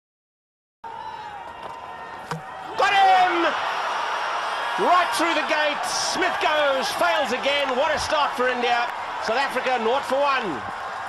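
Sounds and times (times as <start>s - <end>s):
crowd cheering: 0.8s - 11.0s
crowd noise: 0.8s - 11.0s
players shouting: 0.8s - 11.0s
ball hitting stumps: 1.6s - 2.6s.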